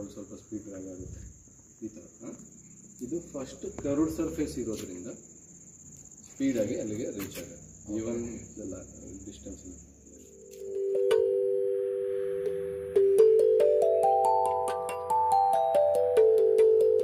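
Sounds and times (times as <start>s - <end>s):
man talking: 0.0s - 1.1s, 6.4s - 9.8s
cricket trill: 0.0s - 17.0s.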